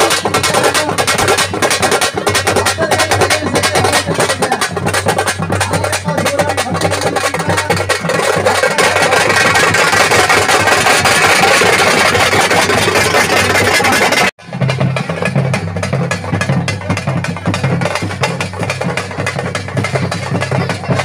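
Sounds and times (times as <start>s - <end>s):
procession music with drums: 0.0s - 21.0s
steady pulsing drum beat: 0.0s - 21.0s.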